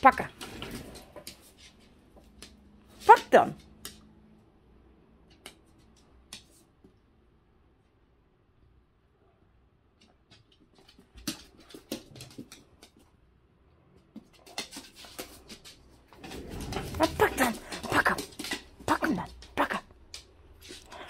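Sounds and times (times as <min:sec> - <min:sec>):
clicks and scuffles on hard floor: 0:00.2 - 0:04.1, 0:10.0 - 0:13.2, 0:14.0 - 0:21.0.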